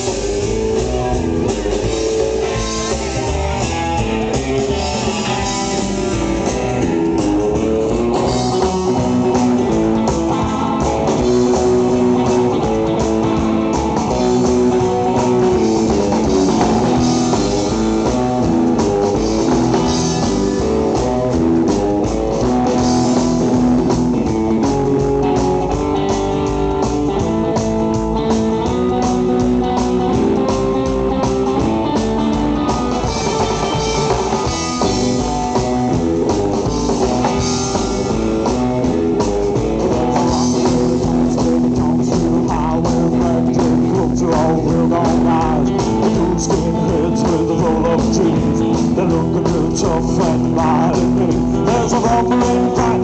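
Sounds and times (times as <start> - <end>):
rockabilly band playing: 0.0 - 53.0.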